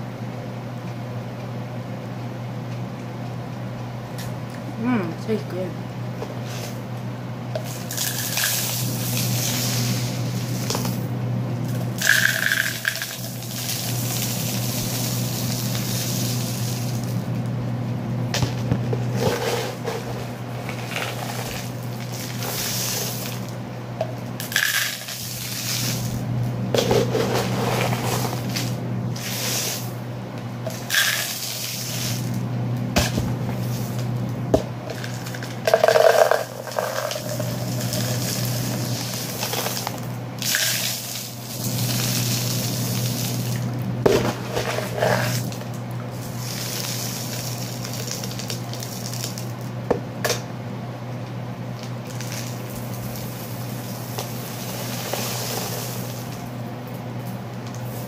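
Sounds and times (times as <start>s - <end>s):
beans and rice pouring: 7.6s - 11.0s, 11.7s - 17.2s, 19.1s - 23.6s, 24.4s - 26.2s, 26.8s - 30.0s, 30.7s - 32.4s, 34.9s - 49.6s, 52.1s - 56.4s
sharp clicks of grains: 7.6s - 11.0s, 11.7s - 17.2s, 24.4s - 26.2s, 30.7s - 32.4s, 34.9s - 45.6s, 46.2s - 49.6s.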